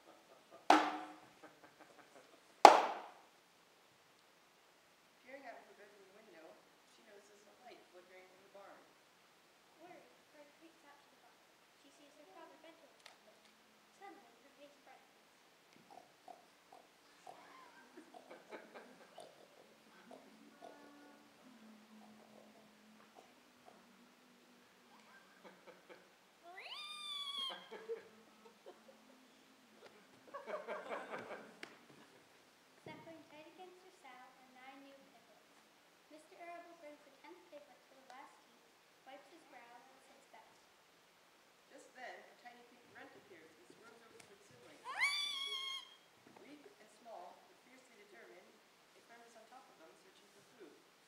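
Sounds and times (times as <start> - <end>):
sharp wooden knocks: 0.7 - 1.2, 2.7 - 3.1
child squealing like a piglet: 26.5 - 27.7, 44.8 - 46.1.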